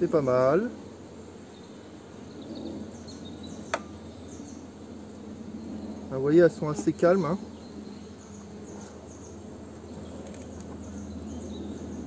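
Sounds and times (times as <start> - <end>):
honeybees humming: 0.0 - 12.0.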